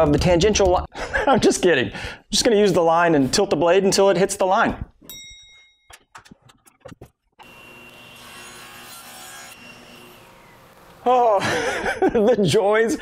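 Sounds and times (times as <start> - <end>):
table saw cutting wood: 6.9 - 11.8.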